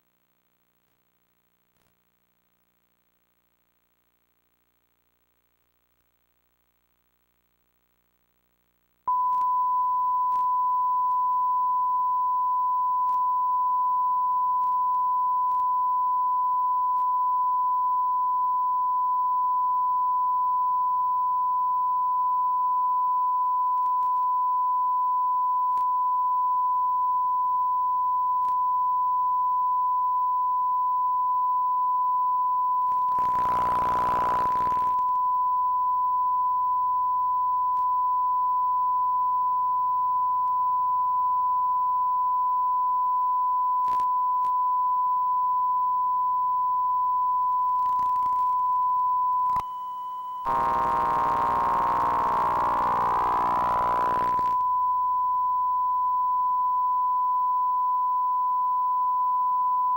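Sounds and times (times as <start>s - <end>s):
sine test tone: 9.1s - 59.9s.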